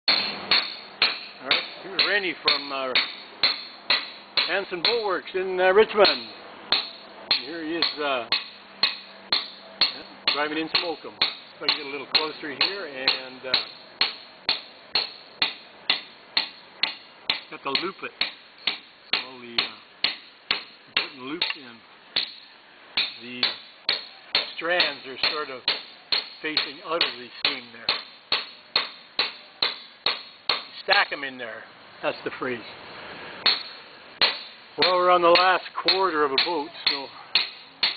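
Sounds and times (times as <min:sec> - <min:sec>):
mallet striking caulking iron: 0:00.1 - 0:05.1, 0:05.9 - 0:30.8, 0:33.4 - 0:37.9.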